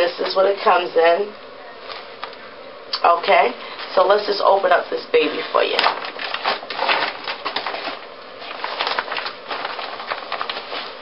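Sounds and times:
plastic packaging crinkling: 5.3 - 11.0.

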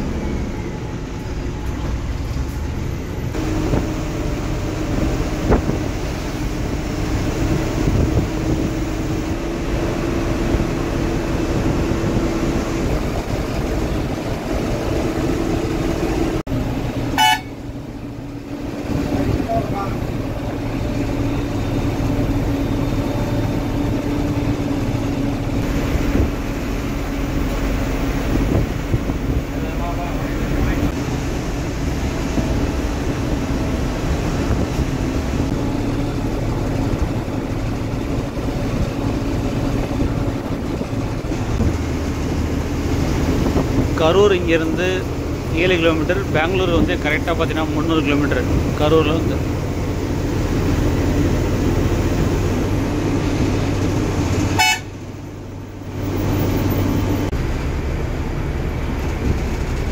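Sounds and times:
bus engine drone: 0.0 - 59.9
road noise: 0.0 - 59.9
short horn toot: 17.2 - 17.6, 54.6 - 55.0.

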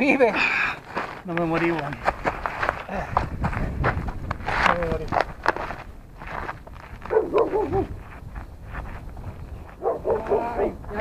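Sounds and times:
footsteps on stony ground: 0.0 - 11.0.

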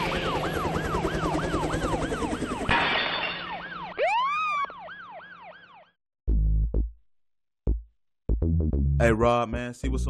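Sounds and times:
siren yelping: 0.0 - 2.7, 3.4 - 6.0
music: 6.3 - 10.0.

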